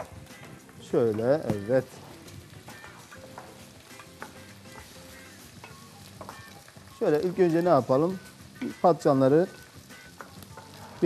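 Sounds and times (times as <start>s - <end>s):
rice sizzling in oil: 0.0s - 11.0s.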